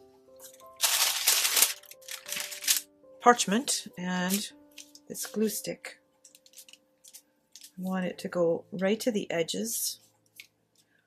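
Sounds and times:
parchment paper rustling: 0:00.4 - 0:02.8, 0:04.2 - 0:05.4, 0:06.2 - 0:07.9.

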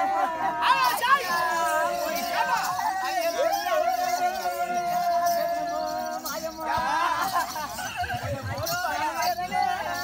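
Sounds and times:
voices in high wavering cries: 0:00.0 - 0:10.0.

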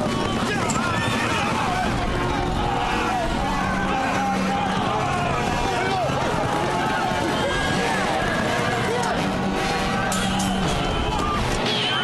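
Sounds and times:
horses galloping: 0:00.0 - 0:09.2
men shouting: 0:00.0 - 0:12.0.

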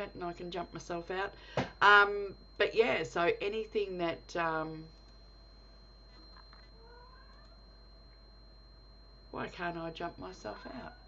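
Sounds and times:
faint high-pitched whine: 0:00.0 - 0:11.0
low hum: 0:00.0 - 0:11.0.

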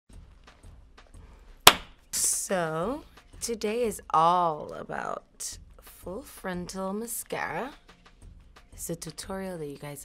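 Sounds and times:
hand clap: 0:01.7 - 0:01.9.

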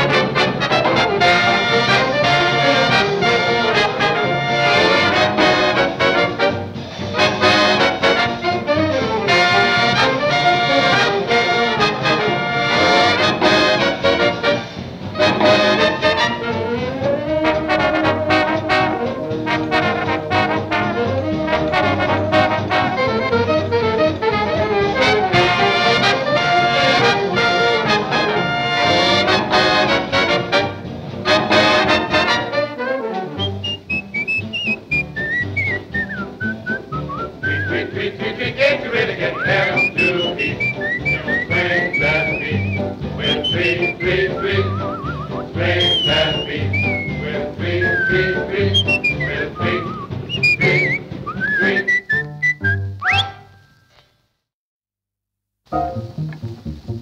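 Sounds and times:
swing big band playing: 0:00.0 - 0:53.5, 0:55.7 - 0:57.0
light whistling: 0:33.4 - 0:37.9, 0:39.2 - 0:53.8.

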